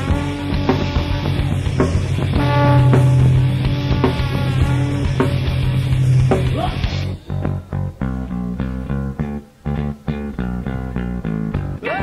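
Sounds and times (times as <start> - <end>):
electric and bass guitar riff: 0.0 - 12.0.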